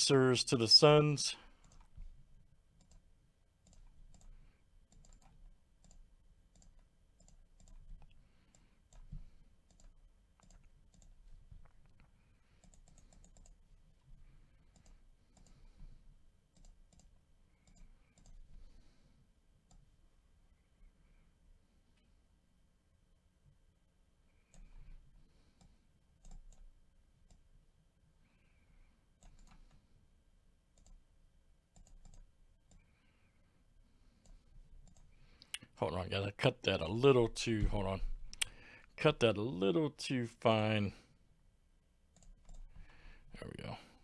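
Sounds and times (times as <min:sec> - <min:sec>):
computer mouse clicks: 0:01.6 - 0:02.0, 0:02.8 - 0:13.6, 0:14.6 - 0:15.9, 0:16.5 - 0:18.5, 0:24.4 - 0:27.5, 0:29.2 - 0:29.8, 0:30.8 - 0:31.0, 0:31.7 - 0:33.0, 0:34.2 - 0:35.6, 0:42.1 - 0:42.9.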